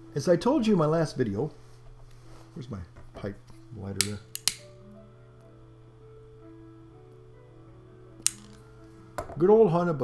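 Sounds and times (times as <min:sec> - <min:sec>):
lighter clicking: 0:04.0 - 0:04.8, 0:08.2 - 0:08.7.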